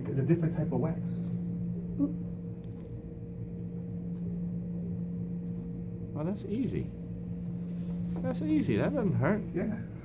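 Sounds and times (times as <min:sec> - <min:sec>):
low hum of room equipment: 0:00.0 - 0:10.0.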